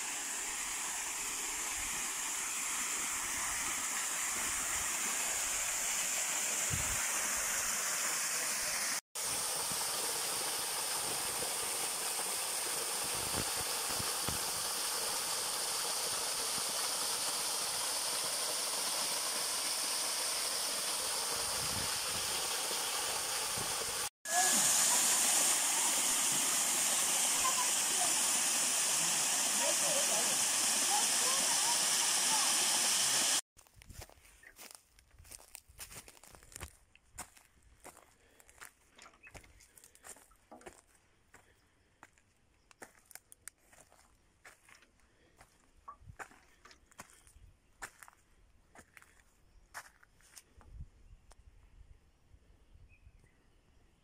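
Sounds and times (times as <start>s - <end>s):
waterfall splashing into pool: 0.0s - 33.4s.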